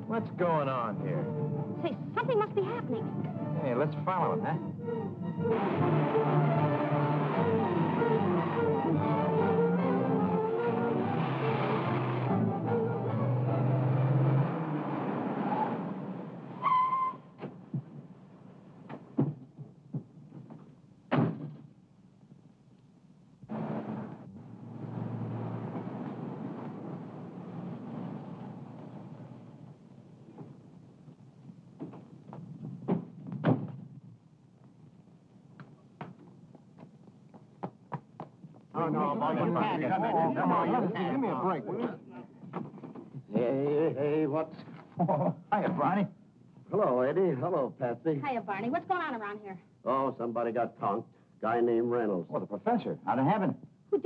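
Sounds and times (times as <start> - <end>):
film score music: 0.0 - 18.4
sharp thuds and knocks: 18.9 - 21.7
car engine low rumble: 23.5 - 29.6.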